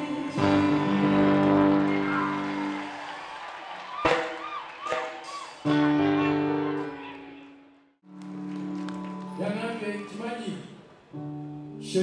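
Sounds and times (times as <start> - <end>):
live band holding chord: 0.0 - 2.8.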